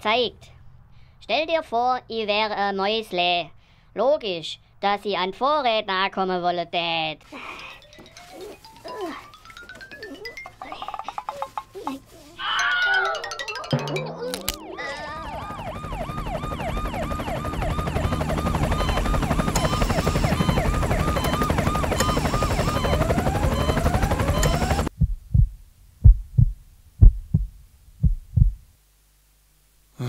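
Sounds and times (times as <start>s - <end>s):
rapid siren-like wail: 14.2s - 24.9s
low throbbing rumble: 24.9s - 28.6s
slow heartbeat thumps: 24.9s - 28.7s.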